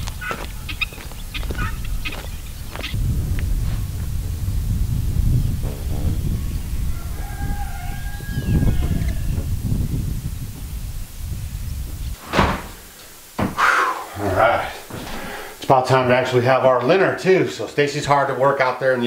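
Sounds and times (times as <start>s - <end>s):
fowl calling: 0.0s - 3.0s, 6.2s - 9.5s
steady low rumble: 0.0s - 12.2s.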